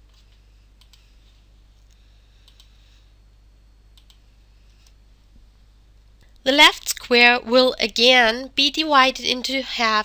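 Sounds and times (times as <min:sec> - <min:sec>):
low steady hum: 0:00.0 - 0:10.0
computer mouse clicks: 0:00.1 - 0:01.1, 0:01.9 - 0:02.8, 0:04.0 - 0:05.0.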